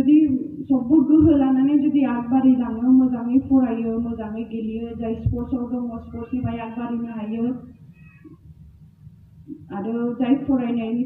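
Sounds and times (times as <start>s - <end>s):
woman speaking over loudspeaker: 0.0s - 7.6s, 9.6s - 11.0s
low background rumble: 0.0s - 11.0s.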